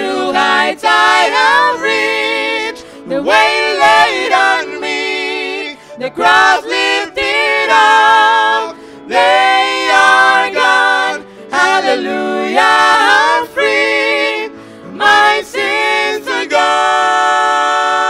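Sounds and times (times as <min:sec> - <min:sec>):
vocal trio singing in harmony: 0:00.0 - 0:18.0.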